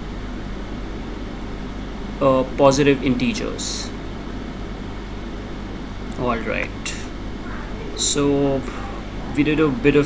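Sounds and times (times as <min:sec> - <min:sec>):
room tone hum and hiss: 0:00.0 - 0:10.0.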